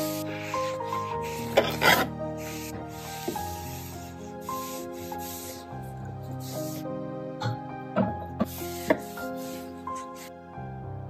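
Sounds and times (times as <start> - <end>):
cloth wiping wood: 0.0 - 6.9, 8.4 - 10.3
background music sustained notes: 0.0 - 11.0.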